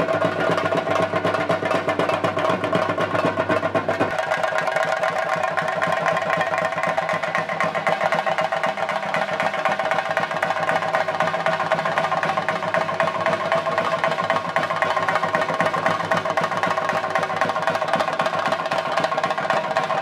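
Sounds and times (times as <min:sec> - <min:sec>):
fast drumming: 0:00.0 - 0:20.0.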